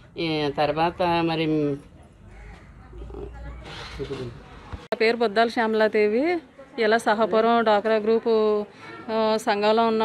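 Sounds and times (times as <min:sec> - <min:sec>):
faint background voices: 0:01.8 - 0:10.0.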